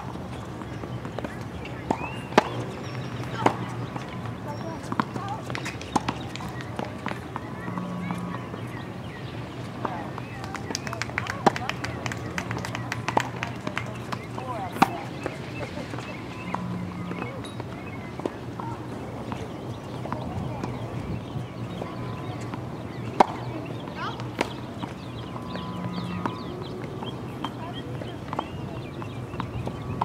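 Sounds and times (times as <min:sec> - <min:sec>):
faint voices of people: 0:00.0 - 0:30.0
tennis ball bouncing on hard court: 0:00.6 - 0:08.7, 0:09.8 - 0:20.8, 0:21.7 - 0:30.0.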